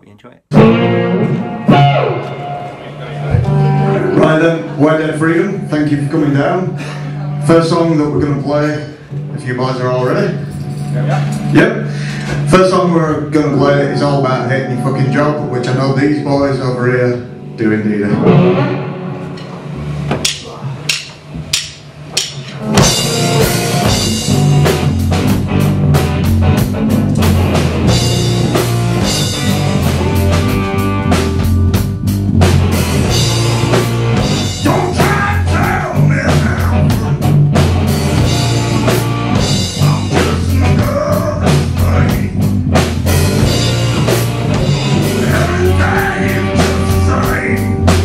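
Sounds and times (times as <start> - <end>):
rock band playing: 0.5 - 48.0.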